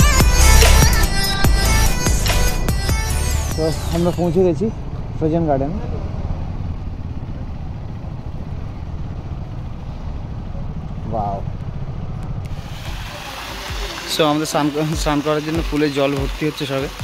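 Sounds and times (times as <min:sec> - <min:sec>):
motorcycle engines rumbling: 0:00.0 - 0:17.0
water pouring into pool: 0:12.5 - 0:17.0.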